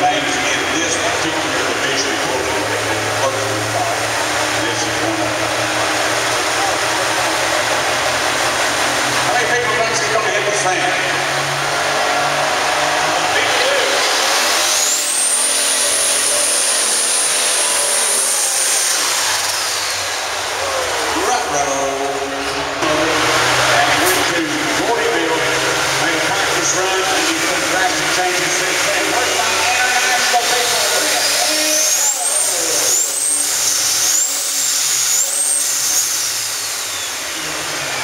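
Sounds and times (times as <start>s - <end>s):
crowd: 0.0s - 38.0s
high engine whine: 0.0s - 38.0s
loud diesel tractor engine: 0.0s - 38.0s.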